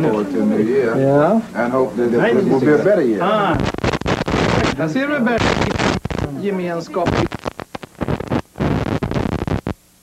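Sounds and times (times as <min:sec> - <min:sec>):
man speaking: 0:06.2 - 0:07.3.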